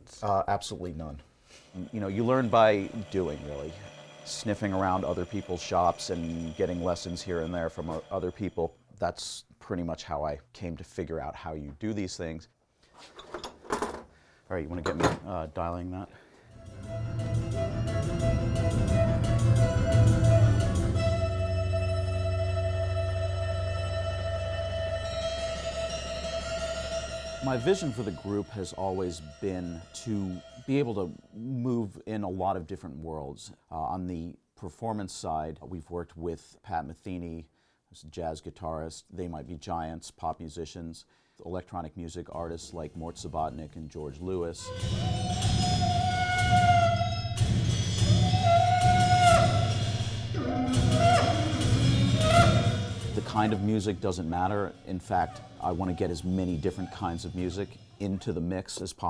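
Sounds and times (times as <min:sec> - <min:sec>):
low drone: 0:16.5 - 0:30.7
trombone sliding notes: 0:16.5 - 0:31.6, 0:44.6 - 0:58.2
bowed violins: 0:16.6 - 0:31.2.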